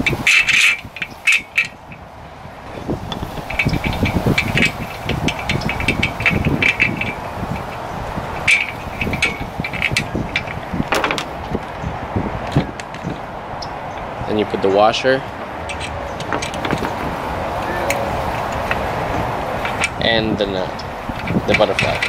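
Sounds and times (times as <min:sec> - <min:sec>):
metal hardware clinking on rack: 0:00.0 - 0:02.0, 0:03.1 - 0:11.8, 0:15.4 - 0:22.0.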